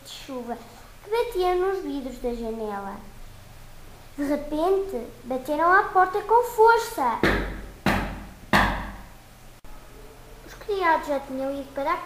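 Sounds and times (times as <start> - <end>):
loud knocks on a door: 7.2 - 9.1.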